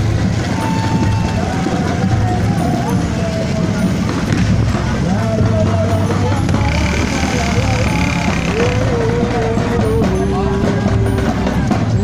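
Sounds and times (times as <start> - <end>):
drumming: 0.0 - 12.0
marchers chanting: 0.0 - 12.0
motorcycle engine running: 0.0 - 12.0
music: 0.0 - 12.0.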